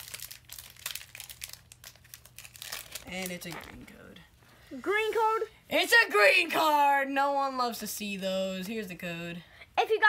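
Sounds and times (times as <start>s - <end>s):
foil wrapper crinkling: 0.0s - 4.2s.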